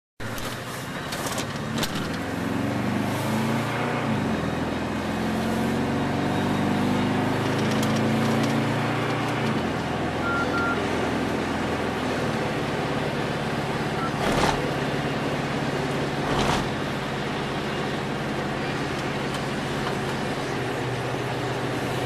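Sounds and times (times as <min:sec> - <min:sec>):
road noise inside car: 0:00.2 - 0:22.0
car engine revving: 0:01.8 - 0:17.7
short high beeps: 0:10.2 - 0:10.8, 0:14.0 - 0:14.3.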